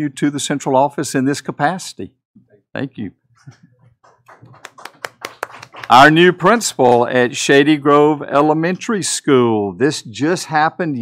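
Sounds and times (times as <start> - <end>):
light applause: 4.2 - 7.0
man's voice: 5.9 - 11.0.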